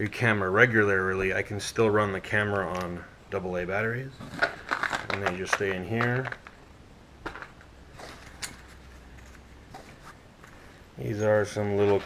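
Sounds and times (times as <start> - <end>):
soft clicks and rustles: 4.2 - 10.8.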